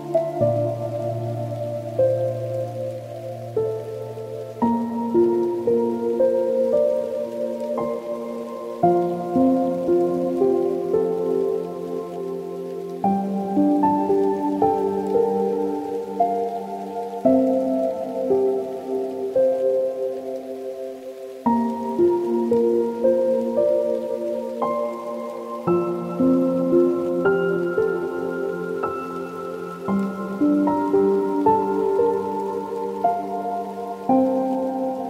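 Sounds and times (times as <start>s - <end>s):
slow solo piano music: 0.0s - 35.0s.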